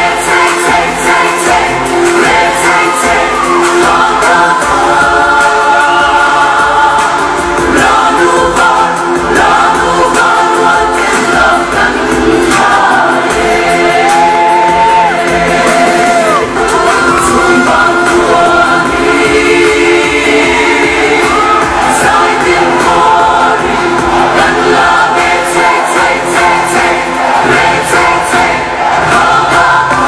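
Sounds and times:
group singing in chorus: 0:00.0 - 0:30.0
steady drum beat: 0:00.0 - 0:30.0.

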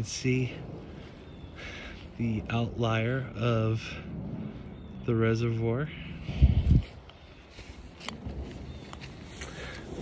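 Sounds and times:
low rumble on microphone: 0:00.0 - 0:10.0
footsteps on dry leaves and twigs: 0:06.2 - 0:10.0.

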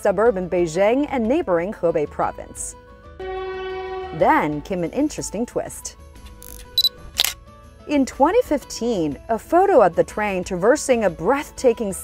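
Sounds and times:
soft background music: 0:00.0 - 0:12.0
camera shutter click: 0:06.3 - 0:07.4
short high beep: 0:06.4 - 0:07.0.

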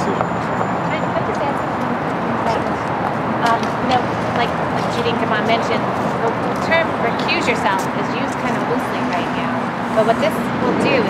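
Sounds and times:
street noise: 0:00.0 - 0:11.0.

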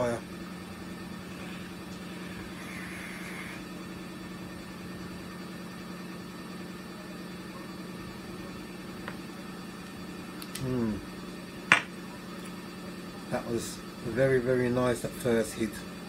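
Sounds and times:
washing machine humming: 0:00.0 - 0:16.0.

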